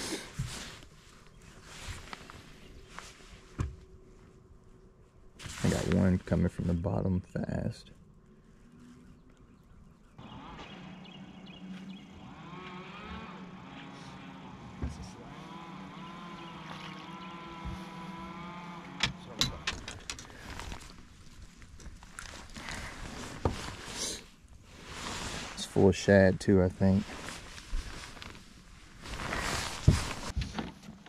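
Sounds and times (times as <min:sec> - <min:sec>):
motor hum: 0:08.1 - 0:23.8.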